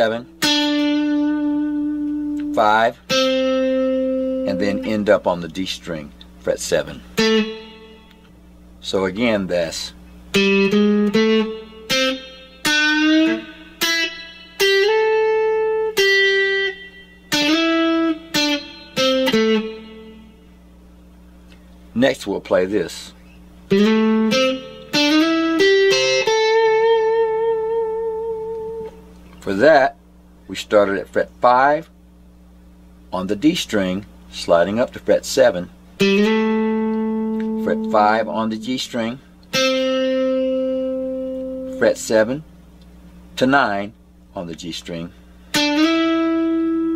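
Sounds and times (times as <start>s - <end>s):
electric guitar lead phrase: 0.0s - 5.7s, 6.5s - 8.3s, 9.1s - 20.5s, 23.7s - 29.6s, 35.4s - 42.4s, 45.4s - 46.9s.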